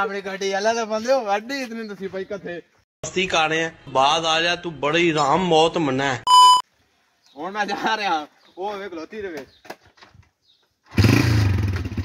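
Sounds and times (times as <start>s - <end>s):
motorcycle engine starting and running: 10.8s - 12.0s.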